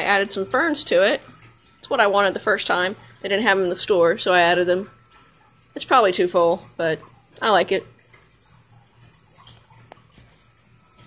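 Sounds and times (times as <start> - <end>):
trickle of water from filters: 0.0 - 11.0.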